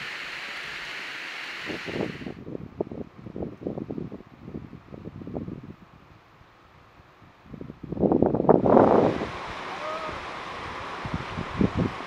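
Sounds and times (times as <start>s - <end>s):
outdoor hiss: 0.0s - 2.5s, 6.0s - 12.0s
wind buffeting microphone: 1.6s - 6.2s, 7.3s - 12.0s.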